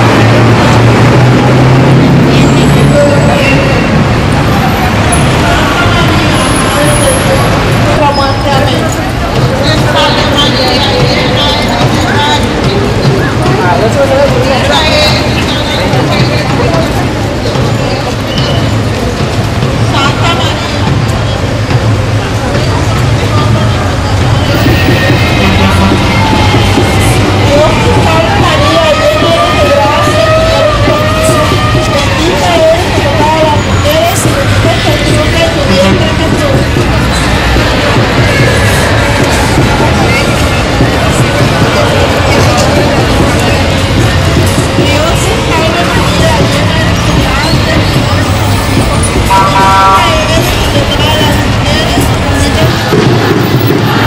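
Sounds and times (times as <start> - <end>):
crowd chatter: 0.0 - 54.0
vehicle traffic hum: 0.0 - 54.0
vehicle horn toot: 49.3 - 50.2.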